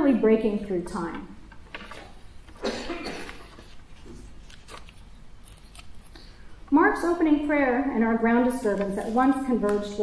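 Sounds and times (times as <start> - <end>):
low steady room hum: 0.0 - 10.0
short cough-like noise: 2.6 - 3.6.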